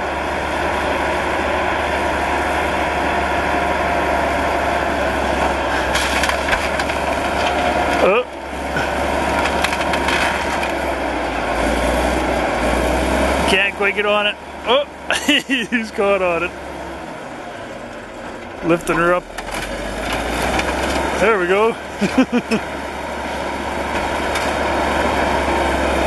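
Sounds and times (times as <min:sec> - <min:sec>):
diesel engine running hard: 0:00.0 - 0:26.0
metal crunching and banging: 0:05.8 - 0:08.1, 0:08.8 - 0:10.8.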